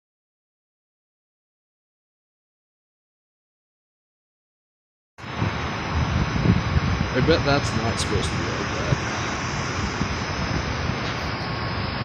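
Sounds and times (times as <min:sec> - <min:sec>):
faint thin steady whine: 0:05.2 - 0:12.0
outdoor background noise: 0:05.2 - 0:12.0
wind rumbling on microphone: 0:05.2 - 0:12.0.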